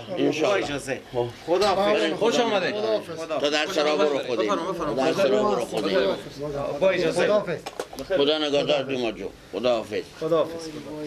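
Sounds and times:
men's voices murmuring: 0.0 - 11.0.

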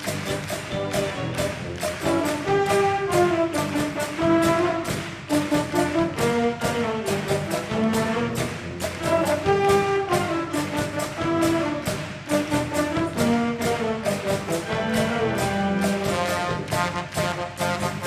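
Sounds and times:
wind band playing upbeat music: 0.0 - 18.0.

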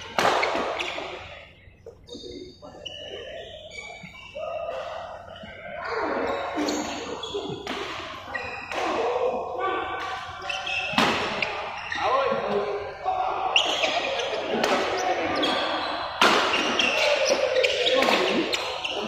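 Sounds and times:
rackets hitting shuttlecock: 0.0 - 2.4, 6.0 - 9.2, 10.0 - 11.6, 13.6 - 15.6, 16.2 - 19.0
voices talking: 0.0 - 19.0.

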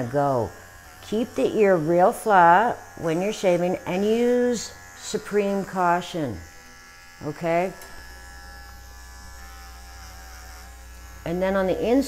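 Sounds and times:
electric clipper buzzing: 0.0 - 12.0.

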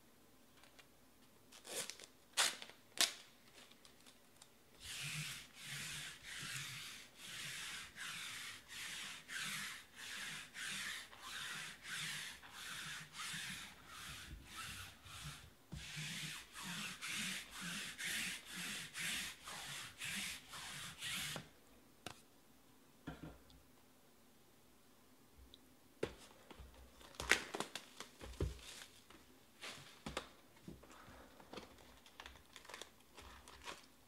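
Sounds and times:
rubbing or scraping strokes: 4.8 - 21.4.

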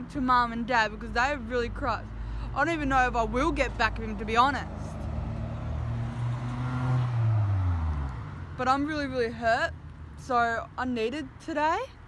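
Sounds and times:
street traffic: 0.0 - 12.0
vehicle engine humming: 0.0 - 12.0.

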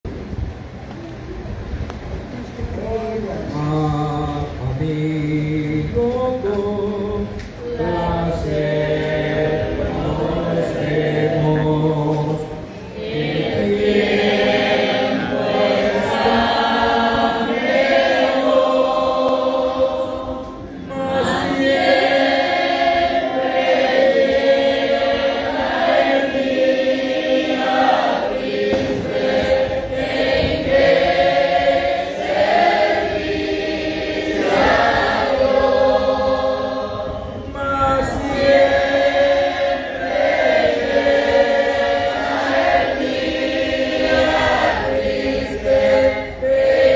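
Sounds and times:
congregation singing a hymn: 2.8 - 46.9.

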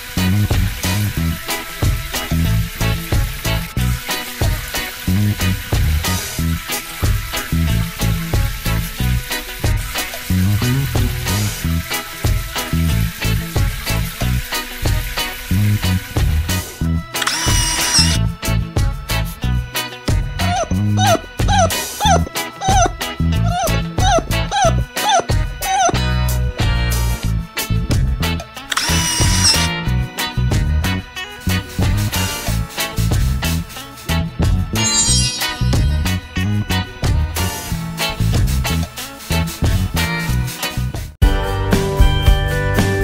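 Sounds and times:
cartoon water spray hissing: 0.0 - 18.2, 20.4 - 27.3, 28.6 - 29.9, 31.2 - 40.9
upbeat background music: 0.0 - 43.0
bright chime-like tone: 17.2 - 18.2, 28.7 - 29.7, 34.8 - 36.1
short mechanical whirring: 17.2 - 18.2, 28.7 - 29.7.

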